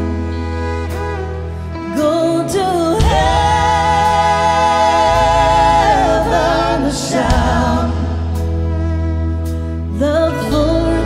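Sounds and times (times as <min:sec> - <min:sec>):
live band playing country ballad: 0:00.0 - 0:11.0
singers in close harmony: 0:03.0 - 0:08.5.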